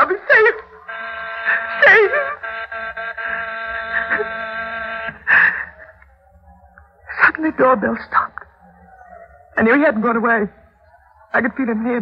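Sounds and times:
electric doorbell buzzer: 0:00.8 - 0:05.2.

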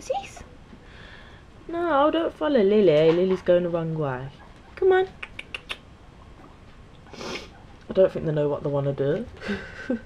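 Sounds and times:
guinea pigs squeaking: 0:01.8 - 0:09.5.

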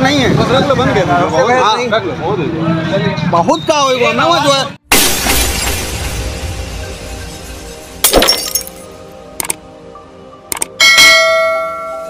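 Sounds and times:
sharp hit: 0:04.9 - 0:08.9
short clicks: 0:09.4 - 0:09.6, 0:10.5 - 0:10.7.

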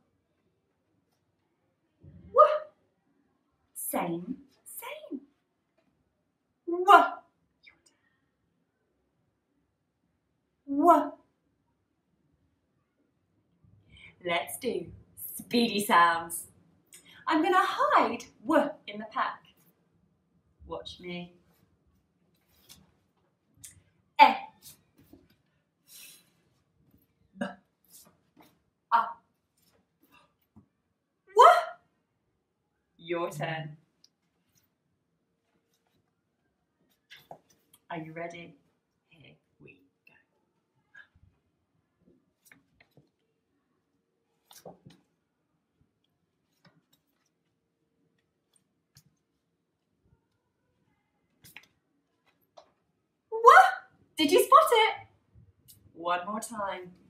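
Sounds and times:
woman saying letter sounds: 0:33.1 - 0:33.7.

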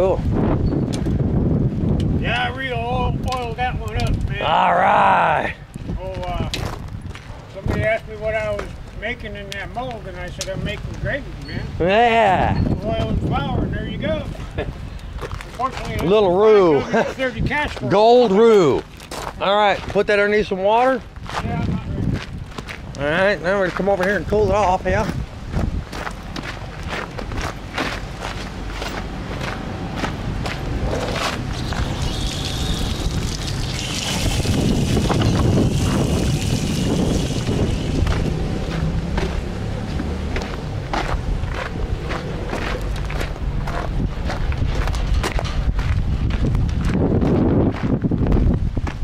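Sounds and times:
wind buffeting microphone: 0:00.0 - 0:49.0
footsteps on gravel: 0:06.0 - 0:09.0, 0:17.6 - 0:20.1, 0:20.8 - 0:24.4, 0:25.0 - 0:49.0.

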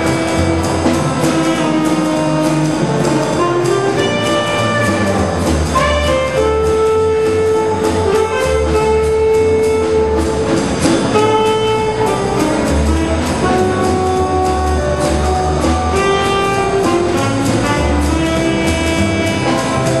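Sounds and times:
jazz combo playing swing: 0:00.0 - 0:20.0
steady cymbal beat: 0:00.0 - 0:20.0
saxophone long notes: 0:05.8 - 0:10.4, 0:11.1 - 0:20.0.

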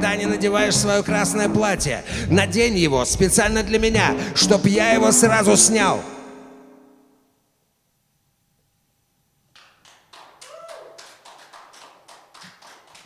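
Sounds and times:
sparse applause: 0:09.5 - 0:13.0.

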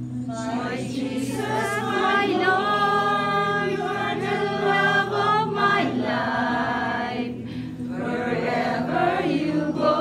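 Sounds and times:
church choir singing: 0:00.2 - 0:10.0.

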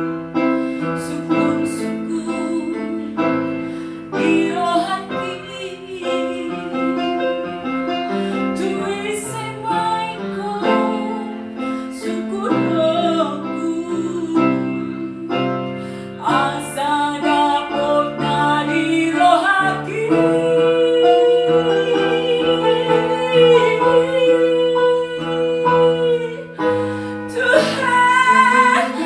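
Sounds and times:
woman singing with vibrato: 0:00.8 - 0:29.0.

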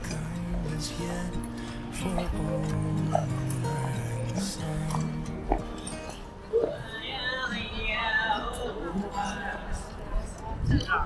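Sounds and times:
street musicians playing: 0:00.0 - 0:10.4.

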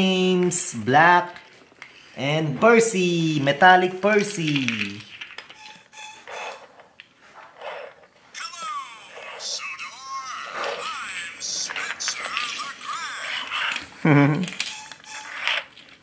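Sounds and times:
high-pitched voice calling: 0:05.6 - 0:06.6, 0:08.4 - 0:13.8.

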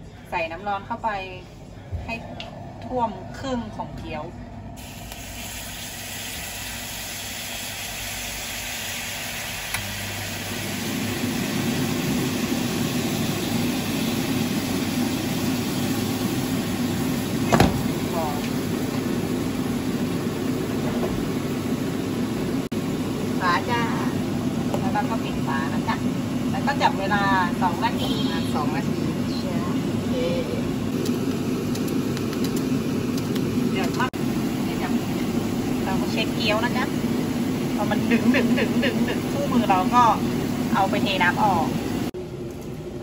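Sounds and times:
water boiling hard: 0:02.6 - 0:42.2
water sizzling in hot pan: 0:04.8 - 0:20.5.

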